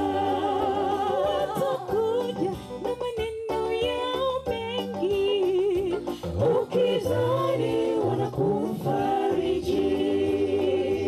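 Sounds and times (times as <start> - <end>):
group singing in harmony: 0.0 - 2.5, 6.1 - 11.0.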